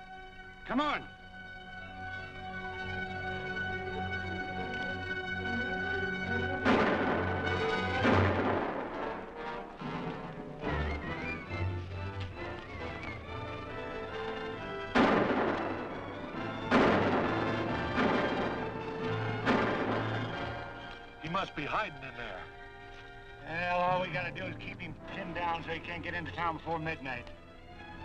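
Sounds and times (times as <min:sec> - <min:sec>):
dramatic music score: 0:00.0 - 0:28.0
gunshots with ringing tail: 0:06.6 - 0:10.2, 0:14.9 - 0:20.8.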